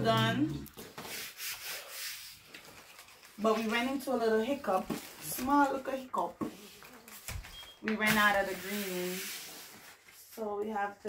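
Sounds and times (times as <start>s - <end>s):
hands rubbing adhesive sheet: 0.8s - 3.0s, 8.3s - 10.0s.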